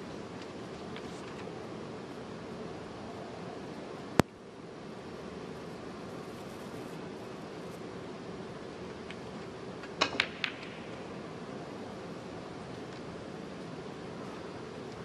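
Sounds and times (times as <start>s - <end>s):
snooker balls clicking: 9.8s - 11.1s.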